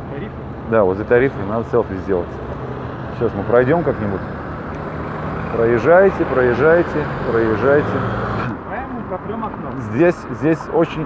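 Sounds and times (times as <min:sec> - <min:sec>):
passing car engine and tyres: 0:00.0 - 0:11.0.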